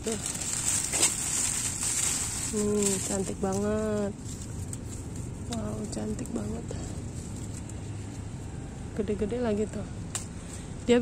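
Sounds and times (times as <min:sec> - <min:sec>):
plastic bag crinkling: 0:00.0 - 0:06.4.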